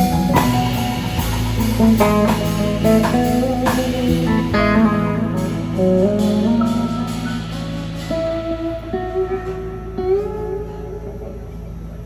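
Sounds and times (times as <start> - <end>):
live band led by guitar: 0.0 - 12.0.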